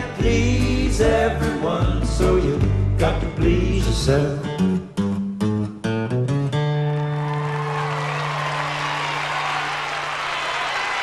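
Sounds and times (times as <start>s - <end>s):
audience applause: 6.8s - 11.0s.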